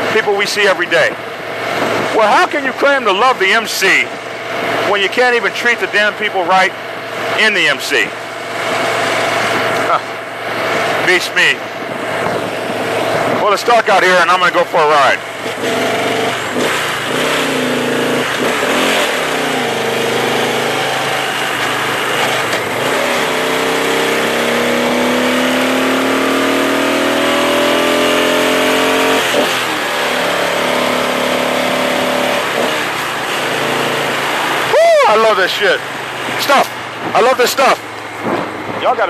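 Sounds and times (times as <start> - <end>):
wind rush on microphone: 1.6 - 2.2, 11.8 - 13.4, 38.2 - 39.0
motorcycle engine accelerating: 8.2 - 13.5, 15.1 - 35.0.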